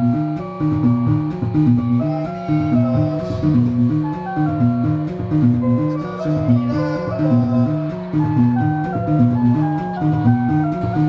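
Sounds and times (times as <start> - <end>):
repeating bass figure: 0.0 - 11.0
synthesizer looping melody: 0.0 - 11.0.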